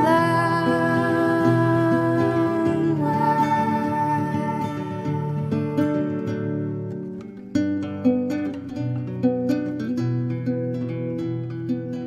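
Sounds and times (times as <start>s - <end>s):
plucked acoustic guitar: 0.0s - 12.0s.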